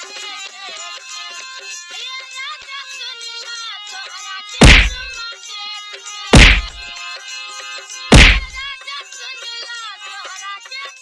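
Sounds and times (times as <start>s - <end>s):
stick whacks: 4.6s - 5.1s, 6.4s - 6.8s, 8.1s - 8.6s.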